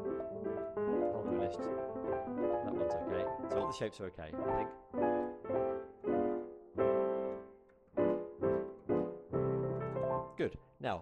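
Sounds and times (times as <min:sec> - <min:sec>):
digital piano block chords: 0:00.0 - 0:10.6.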